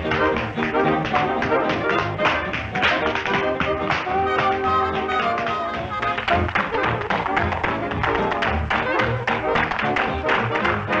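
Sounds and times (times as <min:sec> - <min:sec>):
orchestral dance music: 0:00.0 - 0:11.0
tap shoes on hard floor: 0:00.0 - 0:11.0.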